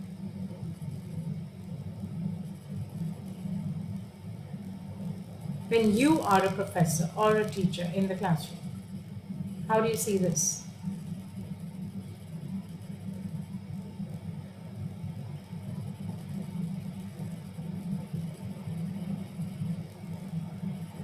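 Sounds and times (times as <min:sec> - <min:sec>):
low rumble of background noise: 0:00.0 - 0:21.0.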